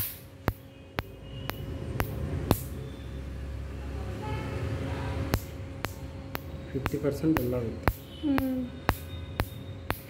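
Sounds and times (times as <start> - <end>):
laser unit humming: 0.0 - 10.0.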